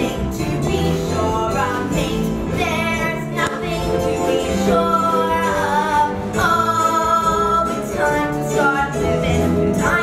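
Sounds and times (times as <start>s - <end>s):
musical accompaniment: 0.0s - 10.0s.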